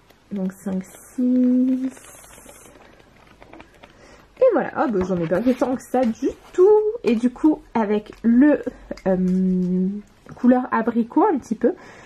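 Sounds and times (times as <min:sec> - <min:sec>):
paper pages flipping: 0:00.0 - 0:10.4.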